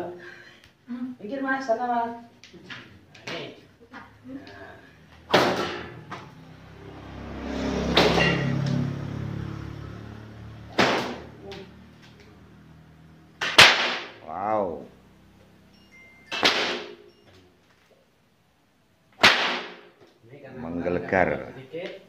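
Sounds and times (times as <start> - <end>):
whip cracking: 10.7 - 11.7, 13.4 - 14.2, 16.4 - 17.0, 19.2 - 19.9.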